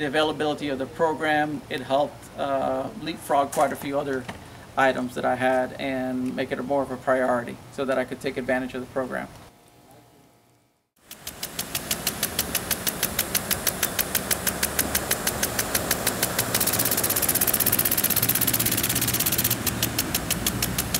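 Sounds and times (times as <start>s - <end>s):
rapid mechanical ticking: 11.0s - 20.9s
hiss: 11.1s - 20.9s.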